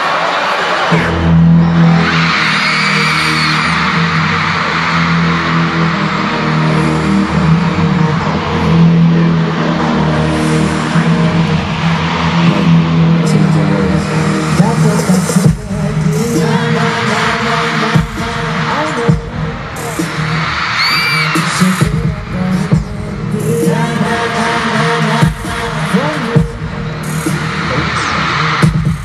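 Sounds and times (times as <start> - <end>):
crowd screaming and cheering: 0.0 - 29.0
heavy-bass dance track over speakers: 0.9 - 29.0.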